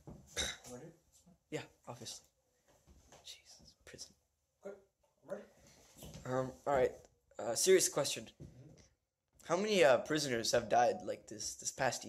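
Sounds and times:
person whispering: 3.2s - 4.1s.

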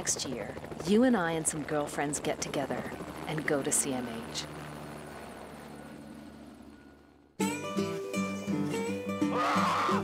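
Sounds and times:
helicopter rotor and engine hum: 0.0s - 9.1s.

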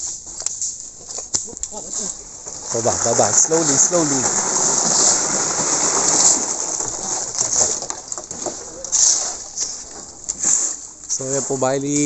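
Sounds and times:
steady high hiss: 0.0s - 12.0s
shovels scraping wet concrete: 0.4s - 12.0s.

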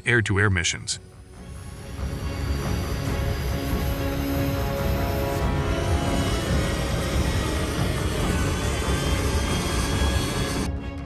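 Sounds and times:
background music: 0.0s - 11.0s
jet engine noise: 1.1s - 10.7s.

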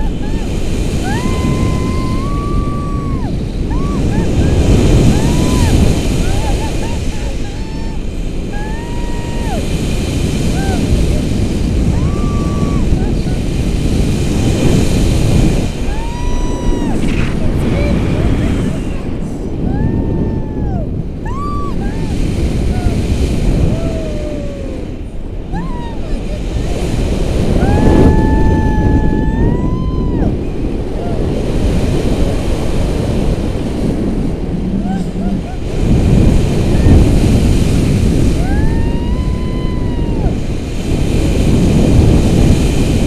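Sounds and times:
person crying out: 0.0s - 9.6s, 10.4s - 13.4s, 18.4s - 26.8s, 34.8s - 36.0s
woman whooping: 0.0s - 9.7s, 10.4s - 13.4s, 15.8s - 17.1s, 17.8s - 31.4s, 34.8s - 35.9s, 38.3s - 40.4s
wind buffeting microphone: 0.0s - 43.0s.

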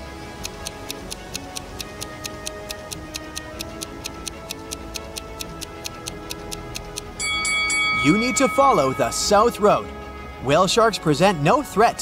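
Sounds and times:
countdown timer ticking: 0.0s - 12.0s
soft background music: 0.0s - 12.0s.

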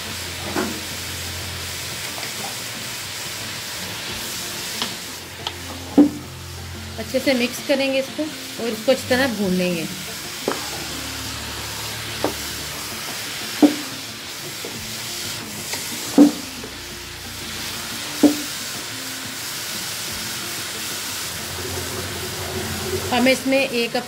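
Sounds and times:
carrots sizzling in a pot: 0.0s - 24.0s.

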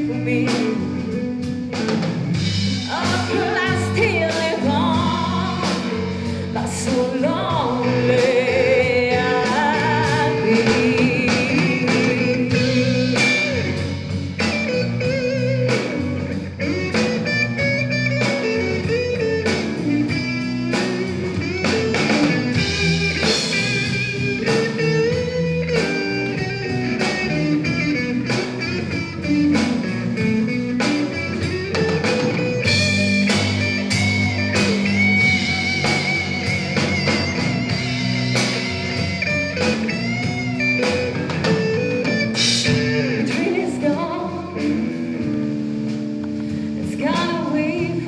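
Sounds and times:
bass guitar: 0.0s - 48.0s
drum kit beat: 0.0s - 48.0s
electric guitar lead line: 0.0s - 48.0s.

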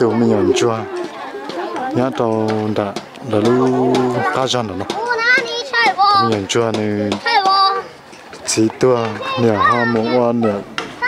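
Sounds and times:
man talking: 0.0s - 0.9s, 2.0s - 4.9s, 6.1s - 7.2s, 8.4s - 10.7s
children's voices: 0.0s - 2.2s, 3.3s - 6.4s, 7.0s - 8.2s, 8.8s - 11.0s.

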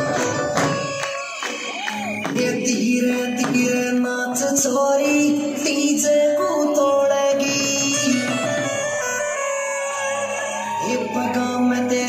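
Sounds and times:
person singing with music: 0.0s - 12.0s.

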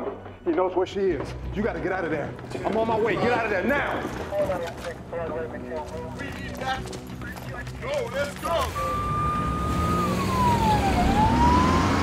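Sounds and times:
people running footsteps: 0.0s - 9.0s.

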